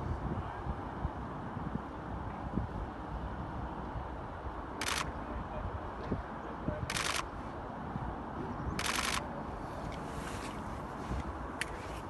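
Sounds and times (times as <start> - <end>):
low background noise: 0.0 - 12.0
camera shutter clicks: 4.8 - 5.1, 6.9 - 7.3, 8.8 - 9.3.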